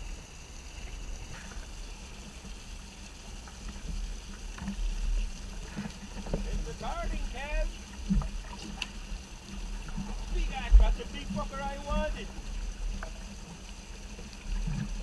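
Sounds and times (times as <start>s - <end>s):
choppy water against boat hull: 0.0s - 15.0s
man calling out: 6.7s - 7.7s, 10.4s - 12.3s.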